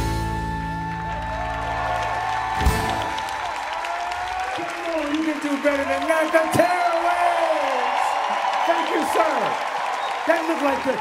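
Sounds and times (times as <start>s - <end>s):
audience applause and cheering: 0.0s - 11.0s.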